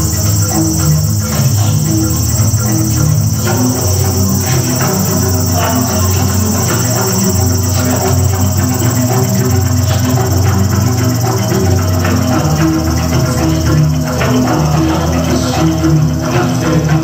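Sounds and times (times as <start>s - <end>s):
electronic drum kit: 0.0s - 15.9s
gamelan keyed percussion: 0.0s - 17.0s.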